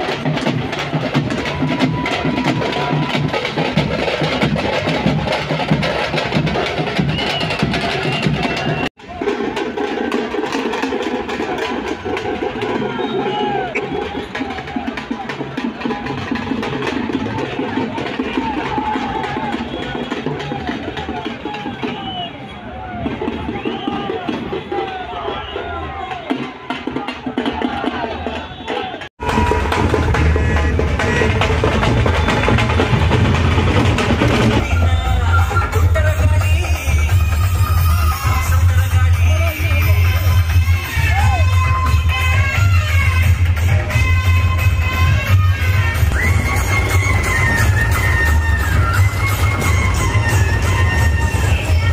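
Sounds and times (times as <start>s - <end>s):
frame drums fast loud beat: 0.0s - 51.9s
music with steady tones: 29.2s - 51.9s.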